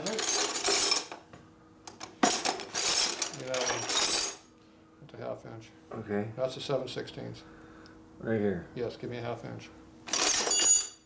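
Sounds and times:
metal wrenches clattering: 0:00.0 - 0:01.2, 0:02.2 - 0:04.4, 0:10.1 - 0:11.0.

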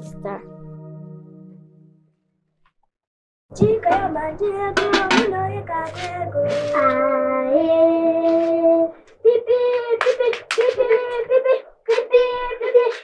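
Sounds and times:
girls singing: 0:03.6 - 0:13.0.

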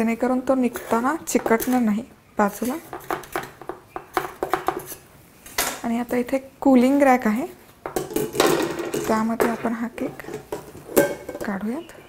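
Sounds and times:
knife scraping metal cake tin: 0:00.6 - 0:01.8.

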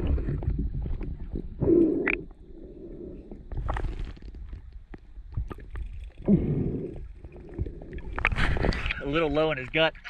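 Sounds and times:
water splashing and sloshing: 0:00.0 - 0:02.4, 0:03.4 - 0:10.0
muffled underwater water noise: 0:00.0 - 0:10.0.

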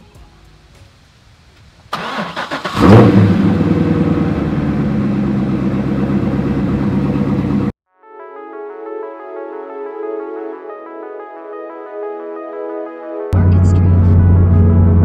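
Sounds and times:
car starter cranking: 0:01.9 - 0:03.3
car engine revving and idling: 0:02.0 - 0:07.8, 0:13.4 - 0:15.0.

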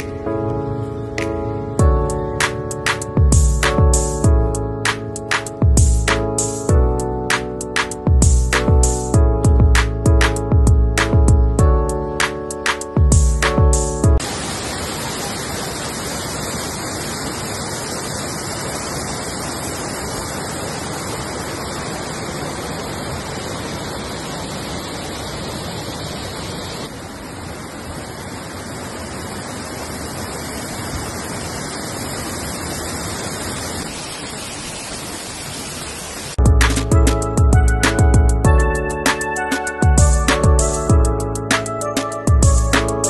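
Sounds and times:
river running over rocks: 0:14.2 - 0:36.8
waterfall rushing: 0:14.2 - 0:36.9.

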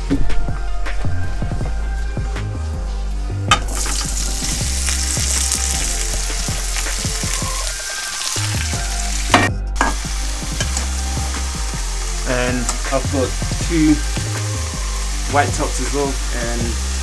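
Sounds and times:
food sizzling in a pan: 0:03.7 - 0:17.0.

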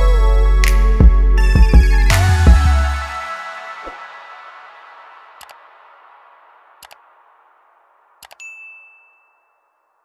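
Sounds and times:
background music: 0:00.0 - 0:07.0
mouse clicks: 0:06.8 - 0:07.0, 0:08.2 - 0:08.4
bright bell ding: 0:08.4 - 0:10.0.

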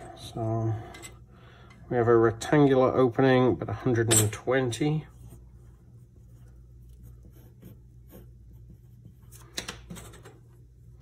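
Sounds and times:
steady low hum: 0:00.0 - 0:11.0
pencil scratching on paper: 0:05.1 - 0:09.5.

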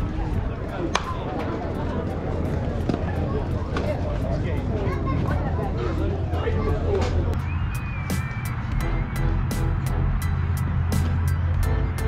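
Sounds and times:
faint background voices: 0:00.0 - 0:07.4
steady low rumble: 0:00.0 - 0:12.0.

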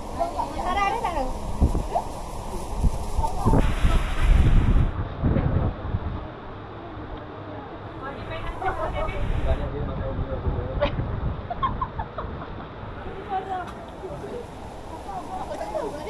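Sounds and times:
indistinct voices talking: 0:00.0 - 0:04.6, 0:06.3 - 0:11.2, 0:12.2 - 0:16.0
low rumble on microphone: 0:00.0 - 0:16.0.

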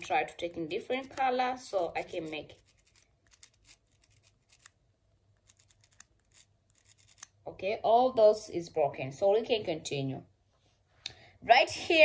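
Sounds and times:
pen scratching a dry leaf: 0:01.8 - 0:04.8, 0:05.4 - 0:07.3.

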